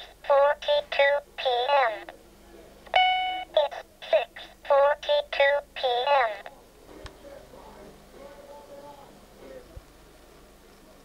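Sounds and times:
synthesized electronic voice: 0.2s - 2.1s, 3.6s - 6.5s
alarm clock beep: 3.0s - 3.5s.

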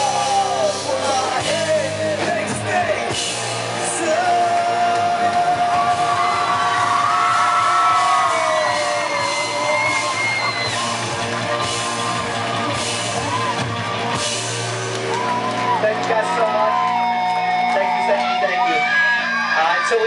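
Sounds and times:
person shouting singing: 0.0s - 3.1s, 3.7s - 11.0s
live rock band playing: 0.0s - 20.0s.

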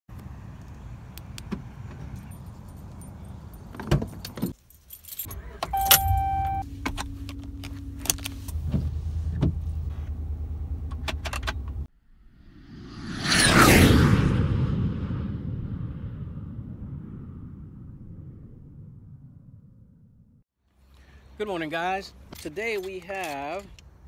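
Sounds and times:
keys jangling: 2.1s - 6.6s
short chime tone: 5.7s - 6.7s.

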